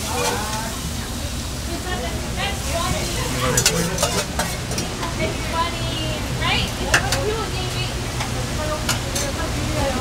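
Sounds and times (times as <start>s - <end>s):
food sizzling on griddle: 0.0s - 10.0s
metal spoon scraping strainer: 3.5s - 4.8s.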